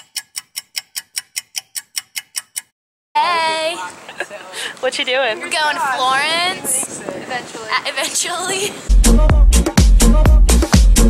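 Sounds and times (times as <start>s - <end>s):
fast clock-like ticking: 0.0s - 2.7s.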